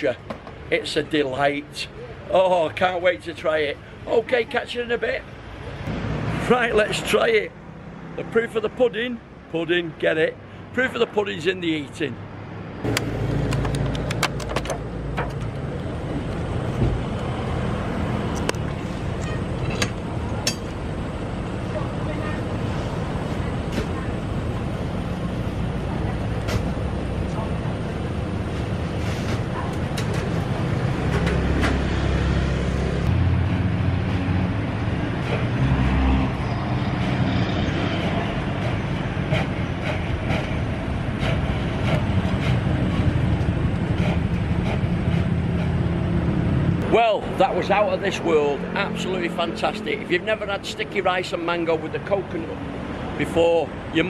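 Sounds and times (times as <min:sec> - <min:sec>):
street traffic rumble: 0:00.0 - 0:54.0.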